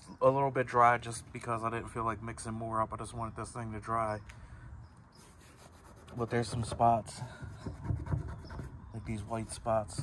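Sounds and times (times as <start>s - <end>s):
faint steady rubbing: 5.2s - 10.0s.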